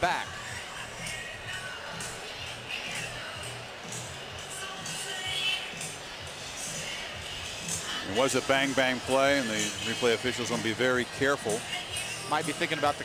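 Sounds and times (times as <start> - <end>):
large crowd noise: 0.0 - 13.0
music in a stadium: 0.0 - 13.0.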